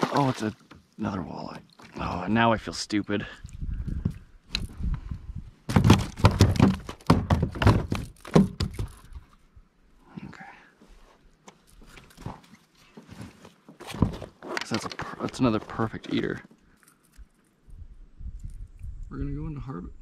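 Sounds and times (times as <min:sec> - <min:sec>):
knocks on plastic kayak deck: 0:05.7 - 0:08.9.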